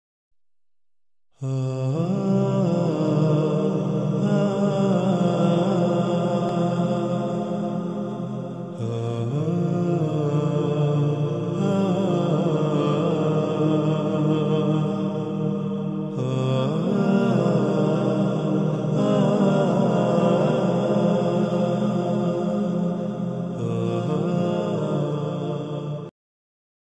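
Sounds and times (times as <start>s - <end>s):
low drone: 1.4s - 26.1s
vocal chant with gliding pitch: 1.4s - 26.1s.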